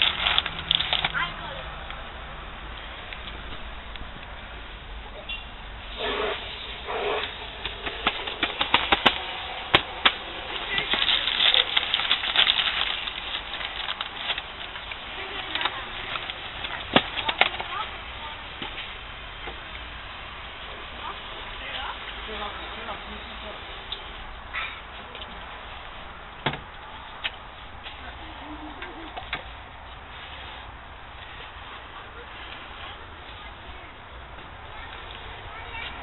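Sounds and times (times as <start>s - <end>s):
paper packet rustling: 0.0s - 1.2s, 7.3s - 17.9s.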